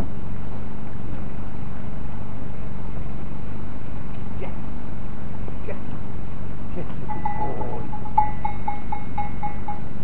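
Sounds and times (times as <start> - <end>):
steady low rumble: 0.0 - 10.0
small livestock bell ringing: 7.0 - 10.0.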